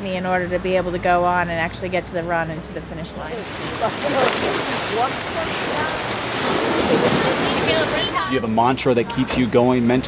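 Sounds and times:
shallow water splashing: 3.2s - 8.3s.

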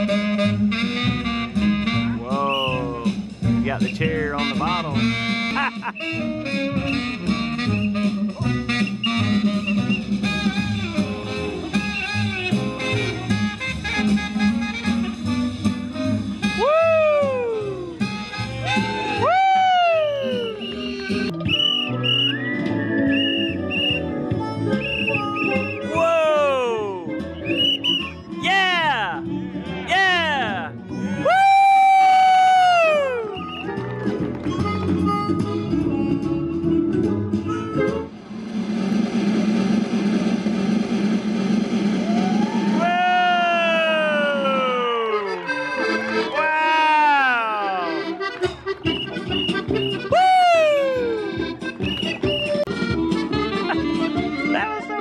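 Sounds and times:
comic backing track: 0.0s - 38.1s, 41.5s - 55.0s
slide whistle glides: 6.0s - 10.2s, 11.8s - 12.4s, 19.8s - 26.0s, 27.2s - 28.3s, 32.9s - 33.7s, 48.9s - 52.6s
falling slide whistle tone: 8.8s - 10.2s, 18.8s - 26.0s, 27.2s - 28.2s
rapid drum roll: 38.1s - 43.0s.

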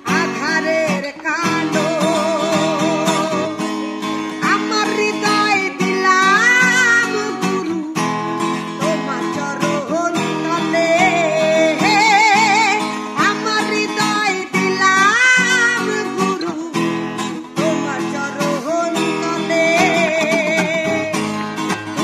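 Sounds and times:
strummed acoustic guitar: 0.0s - 22.0s
woman singing folk song: 0.0s - 22.0s.

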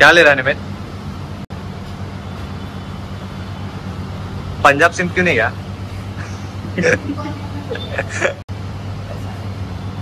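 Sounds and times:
refrigerator and air conditioning hum: 0.0s - 10.0s.

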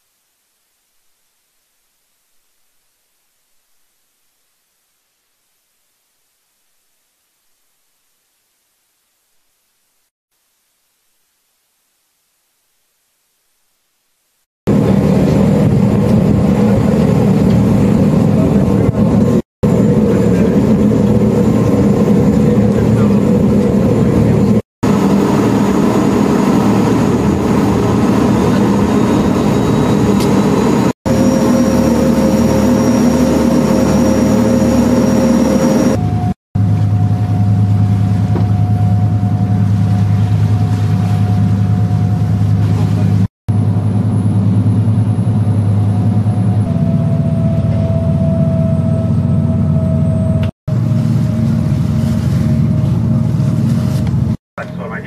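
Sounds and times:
ship engine drone: 14.7s - 55.0s
faint steady whine: 18.3s - 52.0s.

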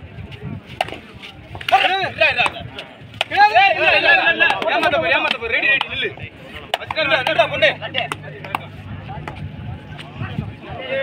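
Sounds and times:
men shouting calls: 3.2s - 6.2s.

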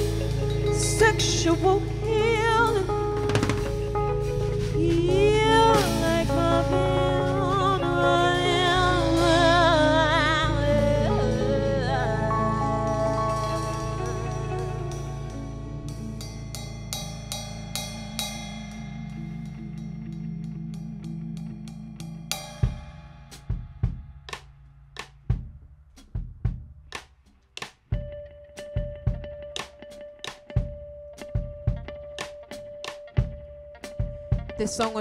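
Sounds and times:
drum kit hits: 0.0s - 19.7s, 22.2s - 35.0s
electric piano and bass chord: 0.0s - 23.3s.

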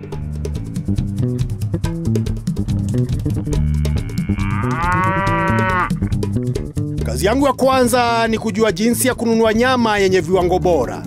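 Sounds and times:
cow mooing: 3.6s - 6.1s.

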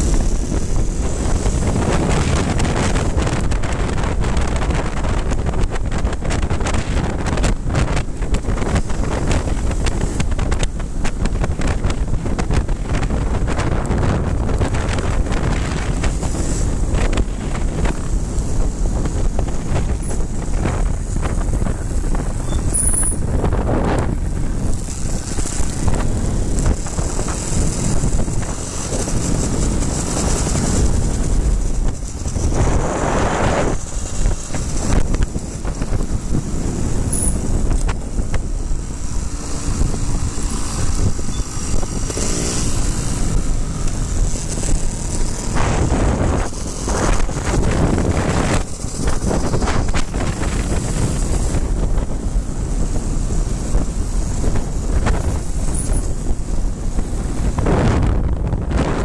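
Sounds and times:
motorcycle engine running: 0.0s - 59.0s
wind rushing over microphone: 0.0s - 59.0s.

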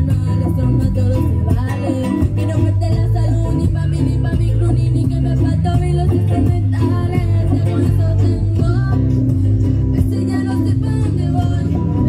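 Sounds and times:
band with guitar and bass: 0.0s - 12.0s
girl singing through microphone: 0.0s - 12.0s.

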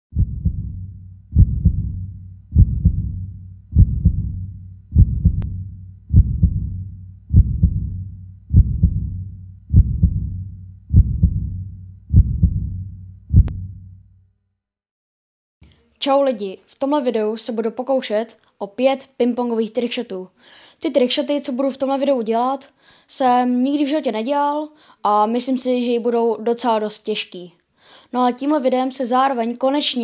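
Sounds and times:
slow heartbeat thuds: 0.1s - 13.9s
low hum: 0.1s - 14.2s.

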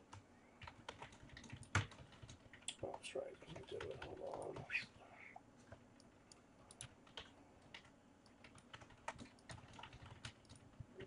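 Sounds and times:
keyboard and mouse clicking: 6.3s - 10.8s.

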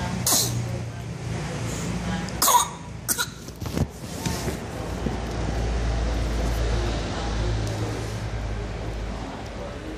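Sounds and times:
baby coughing: 0.2s - 0.6s, 2.4s - 3.6s.

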